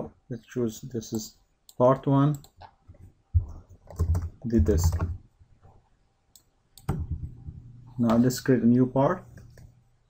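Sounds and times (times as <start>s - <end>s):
computer mouse clicks: 1.7s - 3.0s, 6.3s - 7.4s.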